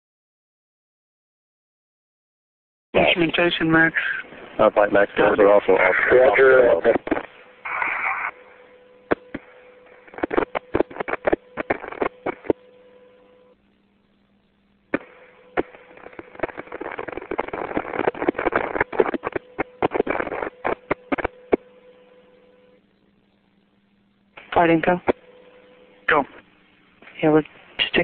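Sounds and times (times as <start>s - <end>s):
radio static crackling: 3.0s - 28.0s
steady hum: 3.0s - 28.0s.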